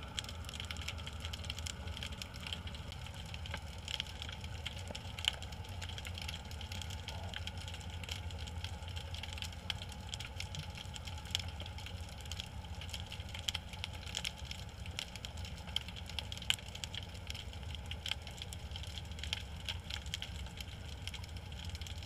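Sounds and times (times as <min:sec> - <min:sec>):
crackling clicks: 0:00.0 - 0:22.0
low underwater hum: 0:00.0 - 0:22.0.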